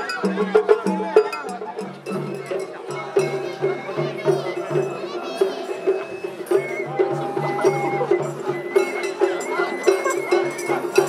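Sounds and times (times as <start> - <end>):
drums: 0.0 - 11.0
bamboo flutes: 3.0 - 11.0.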